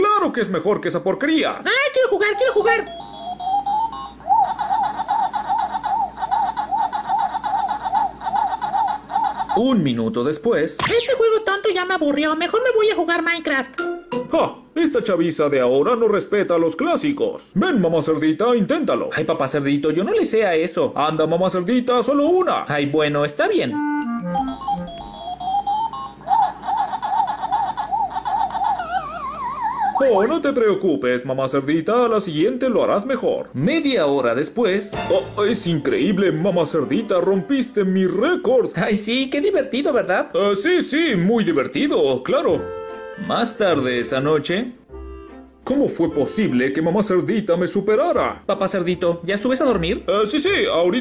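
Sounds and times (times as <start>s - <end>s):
fast warbling tone: 2.0s - 10.1s, 10.8s - 11.4s, 23.7s - 30.4s, 34.9s - 37.2s
arcade game beeps: 2.1s - 9.6s, 13.8s - 14.7s, 23.8s - 30.4s
electronic chomping bleeps: 2.2s - 9.6s, 23.8s - 30.3s.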